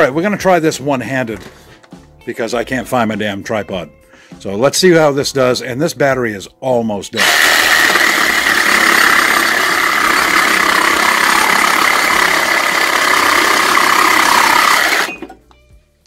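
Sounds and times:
reciprocating saw cutting wood: 7.2s - 15.3s.

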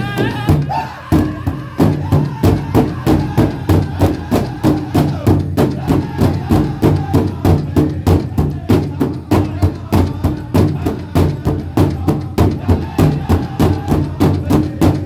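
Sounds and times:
group singing: 0.0s - 15.0s.

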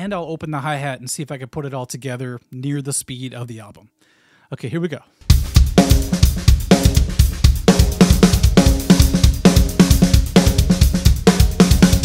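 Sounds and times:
drum kit playing fast groove: 5.2s - 12.0s.

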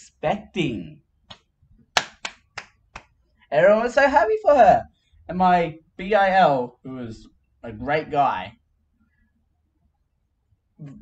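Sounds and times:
man clapping hands: 1.3s - 3.2s.

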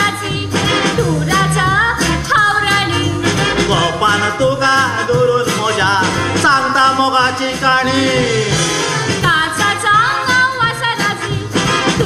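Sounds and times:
woman singing: 0.0s - 3.6s, 9.2s - 12.0s
comedy song sung live: 0.0s - 12.0s
instrumental accompaniment: 0.0s - 12.0s.

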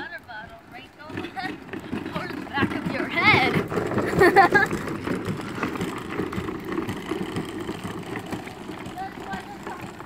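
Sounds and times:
plastic wheels rolling on concrete: 0.0s - 10.0s.

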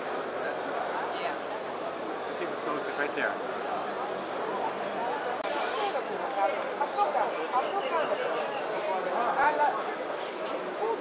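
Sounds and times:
crowd chatter: 0.0s - 11.0s
spray hiss: 5.4s - 6.0s.

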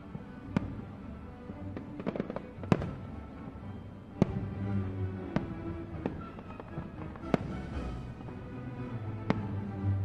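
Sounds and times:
music: 0.0s - 10.0s
fireworks cracking and banging: 1.5s - 3.5s, 5.3s - 9.6s.

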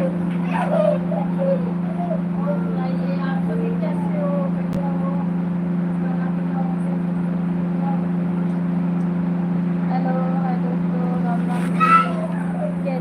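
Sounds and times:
faint voices: 0.0s - 8.7s, 9.8s - 13.0s
low electrical hum: 0.0s - 13.0s.

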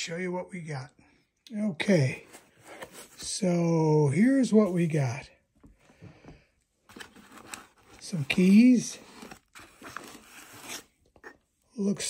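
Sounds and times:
parts pulled from foam packing: 6.9s - 11.4s.

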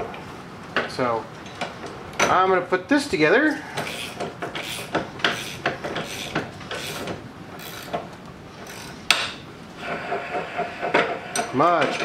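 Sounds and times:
wrench clicking and scraping on metal: 3.8s - 8.0s, 8.6s - 9.3s.

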